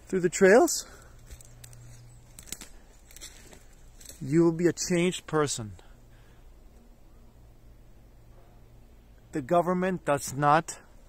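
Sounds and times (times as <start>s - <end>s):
faint low hum: 0.0s - 11.0s
faint crackles and sharp clicks: 1.1s - 4.4s.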